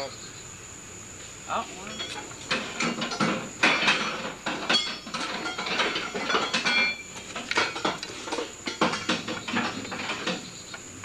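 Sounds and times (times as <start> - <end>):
metal tools clinking: 1.8 - 10.4.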